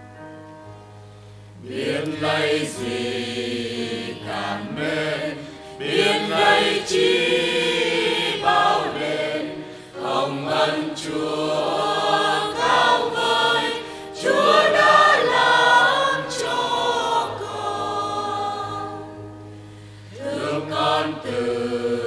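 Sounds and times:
church choir singing a hymn: 0:01.6 - 0:22.0.

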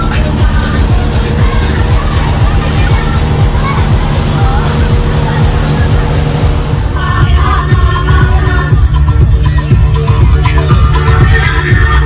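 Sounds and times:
faint crowd voices: 0:00.0 - 0:12.0
low engine rumble: 0:00.0 - 0:12.0.

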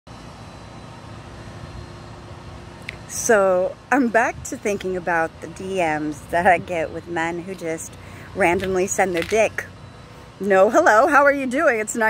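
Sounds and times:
faint steady hum: 0:00.1 - 0:12.0.

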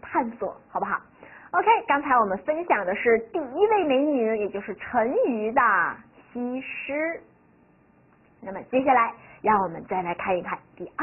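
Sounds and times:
woman talking: 0:00.0 - 0:07.3, 0:08.4 - 0:11.0.

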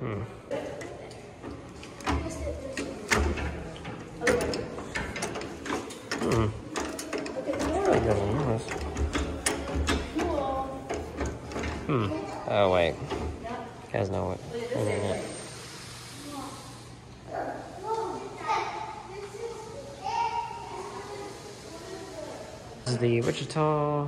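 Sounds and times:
indistinct voices: 0:00.0 - 0:23.2
sharp clicks and knocks: 0:00.8 - 0:11.9, 0:13.0 - 0:13.5.

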